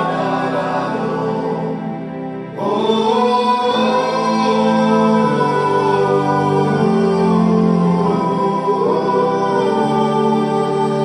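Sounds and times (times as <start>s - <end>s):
men singing a cappella harmony: 0.0s - 11.0s.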